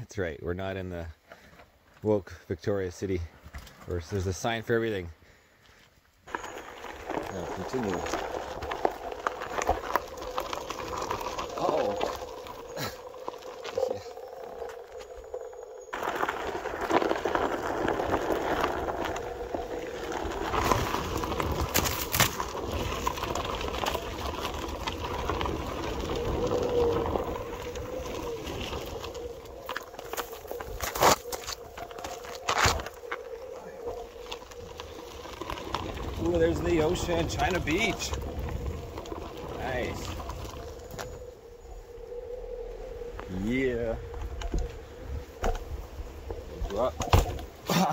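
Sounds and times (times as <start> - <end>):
electric board tyre noise on gravel: 0.1 - 47.9.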